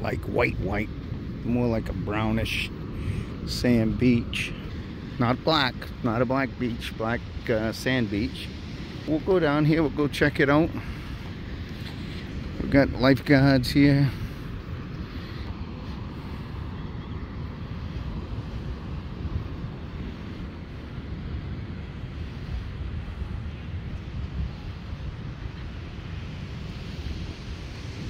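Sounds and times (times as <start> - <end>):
ocean surf breaking: 0.0 - 28.0
wind buffeting microphone: 0.0 - 28.0.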